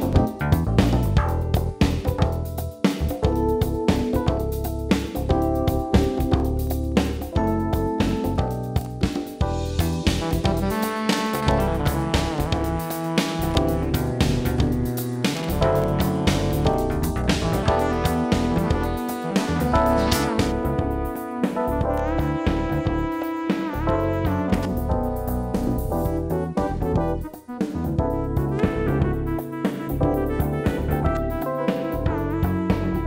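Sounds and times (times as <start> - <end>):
instrumental band track playing: 0.0 - 33.0.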